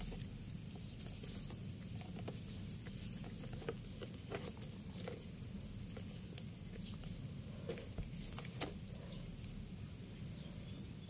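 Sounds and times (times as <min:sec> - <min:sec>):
low outdoor background: 0:00.0 - 0:11.0.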